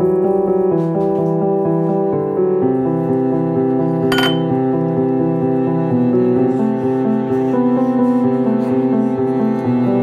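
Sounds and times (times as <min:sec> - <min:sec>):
slow piano music: 0:00.0 - 0:10.0
glass clink: 0:04.1 - 0:04.5.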